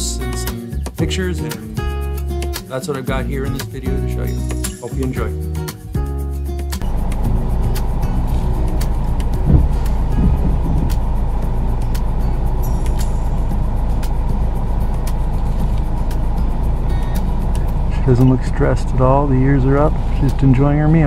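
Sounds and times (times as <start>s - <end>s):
vehicle engine rumbling: 3.2s - 21.0s.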